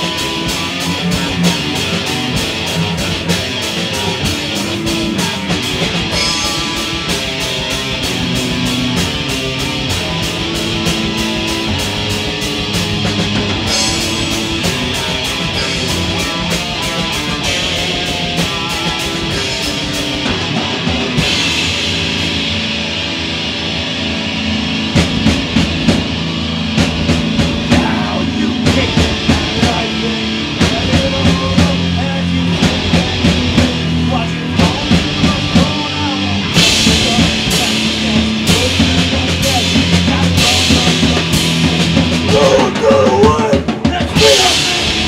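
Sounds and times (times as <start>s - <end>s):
fast drum hits: 0.0s - 22.7s, 24.9s - 45.0s
electric guitar riffing: 0.0s - 45.0s
live metal band: 0.0s - 45.0s.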